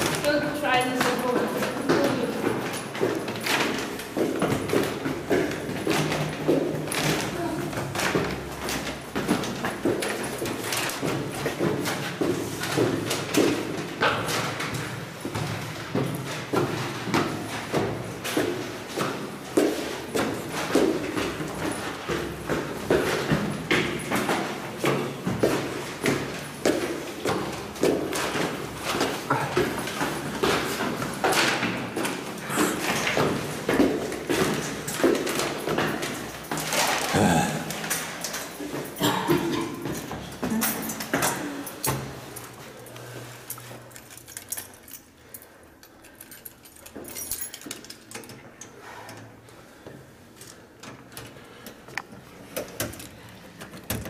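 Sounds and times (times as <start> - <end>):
footsteps on stone stairs: 0.0 - 45.4
people talking: 0.2 - 2.4.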